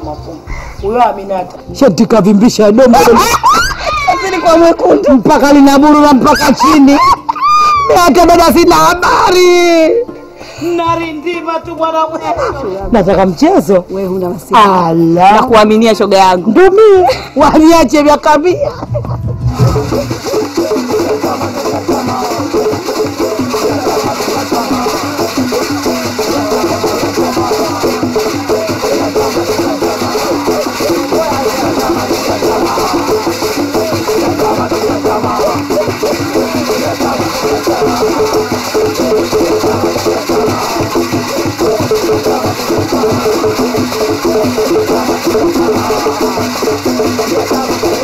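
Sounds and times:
hand drums and percussion music: 0.0 - 48.0.

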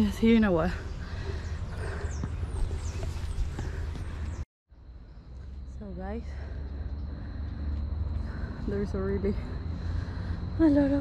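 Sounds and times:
high falling bird chirps: 0.0 - 7.4
footsteps on dirt trail: 1.9 - 4.4.

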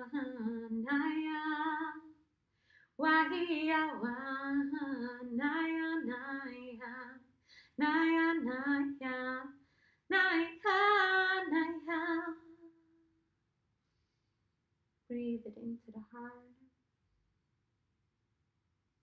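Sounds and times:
woman singing wordless syllables: 0.0 - 2.1, 3.0 - 7.2, 7.8 - 9.5, 15.1 - 16.6.

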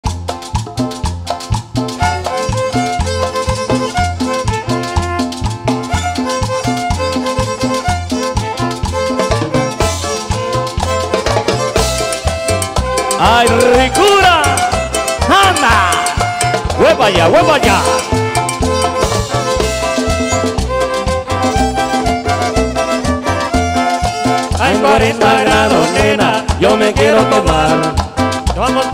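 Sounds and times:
band playing latin dance music: 0.0 - 28.9
sliding melodic line: 1.4 - 28.9.

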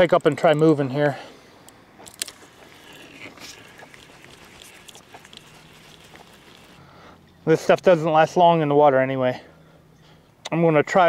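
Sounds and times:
fishing rod and reel handling: 0.0 - 1.0, 1.6 - 6.8.

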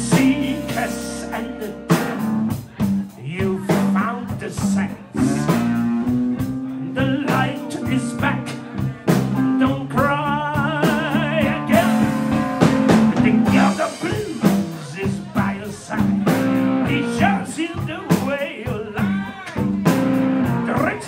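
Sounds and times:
blues-rock band playing: 0.0 - 21.0
guitar vibrato lead line: 0.0 - 21.0.

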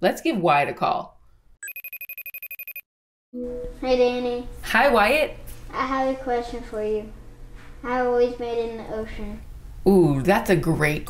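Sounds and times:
phone ringtone trilling: 1.6 - 2.8.

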